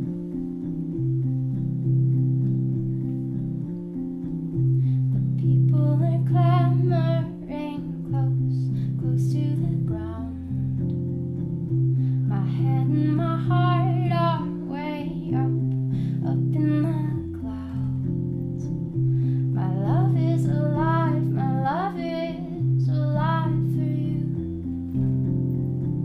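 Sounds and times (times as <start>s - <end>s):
electric piano chords: 0.0s - 26.0s
higher melody with vibrato: 0.0s - 26.0s.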